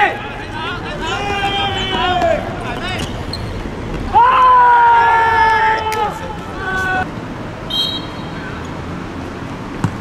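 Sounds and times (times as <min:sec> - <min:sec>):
men shouting: 0:00.0 - 0:03.1, 0:04.1 - 0:07.1
football being kicked: 0:09.8 - 0:10.0.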